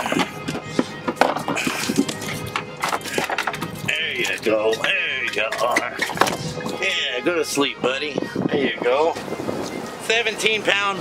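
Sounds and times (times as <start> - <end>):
fish thrashing against hull: 0.0 - 6.9
background music: 0.0 - 11.0.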